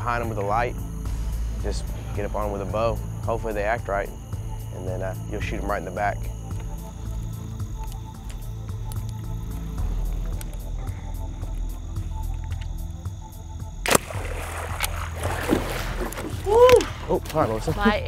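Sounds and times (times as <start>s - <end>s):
low music drone: 0.0s - 18.0s
bow shot crack: 13.8s - 17.0s
alligator thrashing water: 13.8s - 17.8s.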